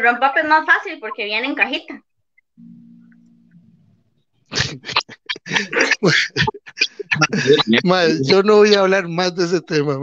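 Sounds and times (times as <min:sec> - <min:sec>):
person laughing out loud: 0:04.5 - 0:08.4.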